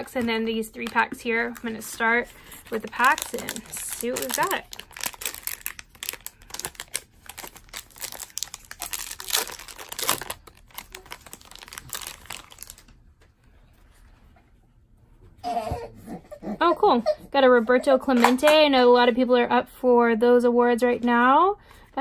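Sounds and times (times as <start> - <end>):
card wrappers torn and crinkled: 0.1 - 12.9.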